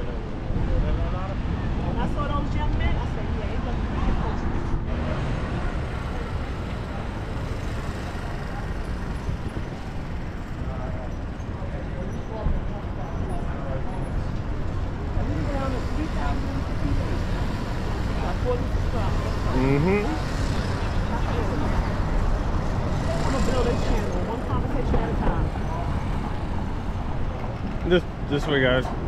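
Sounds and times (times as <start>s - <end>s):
passers-by talking: 0.0s - 29.0s
steady traffic noise: 0.0s - 29.0s.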